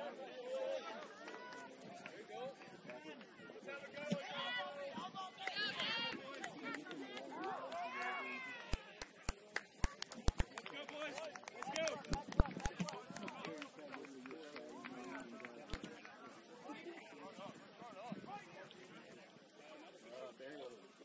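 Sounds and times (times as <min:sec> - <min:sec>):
people shouting and calling: 0:03.4 - 0:09.0.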